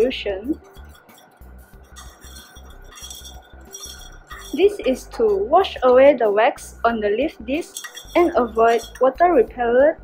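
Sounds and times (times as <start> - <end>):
glass rod clinking in beaker: 0.0 - 6.0, 7.6 - 9.2
quiet background music with beat: 0.0 - 10.0.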